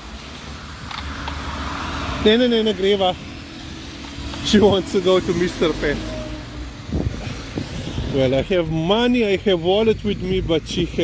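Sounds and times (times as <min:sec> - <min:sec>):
traffic on wet street: 0:00.0 - 0:11.0.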